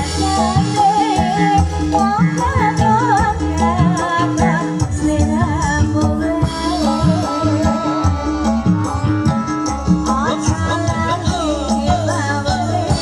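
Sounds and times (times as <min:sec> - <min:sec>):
hand-drum strokes: 0:00.0 - 0:13.0
sustained pitched instrument tones: 0:05.1 - 0:13.0.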